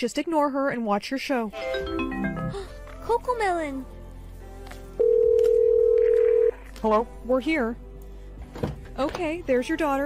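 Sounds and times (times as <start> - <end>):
faint background music: 0.0 - 10.0
telephone ringing beep: 5.0 - 6.6.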